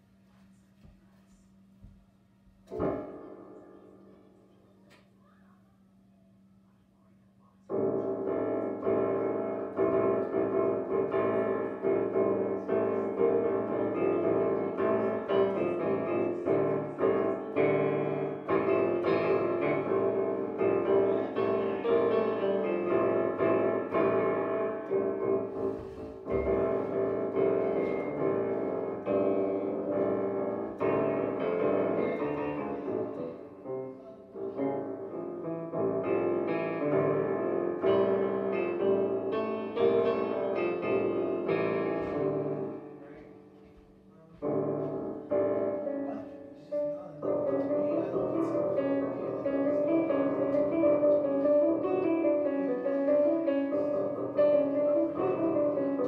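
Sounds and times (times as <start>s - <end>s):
digital piano playing chords: 2.6s - 5.0s, 7.7s - 43.5s, 44.4s - 56.0s.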